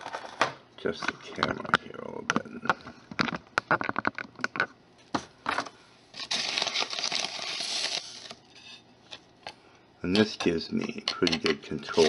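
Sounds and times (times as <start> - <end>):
small clicks and knocks: 1.4 - 4.8.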